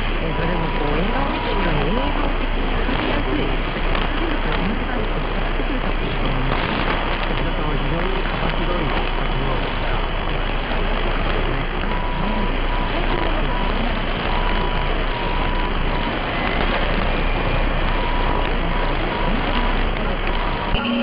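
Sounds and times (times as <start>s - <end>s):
faint voice on radio: 0.0s - 21.0s
radio static hiss: 0.0s - 21.0s
short beep tone: 11.6s - 21.0s.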